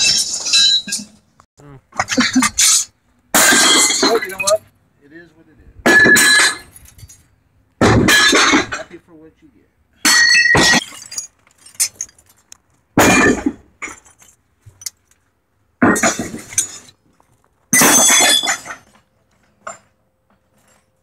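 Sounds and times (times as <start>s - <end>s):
metal scrap crashing: 2.0s - 4.6s, 5.8s - 7.2s, 7.8s - 8.9s, 10.0s - 12.3s, 13.0s - 14.4s, 15.8s - 16.9s, 17.7s - 19.0s
metal clinks: 6.0s - 7.4s, 10.1s - 12.6s.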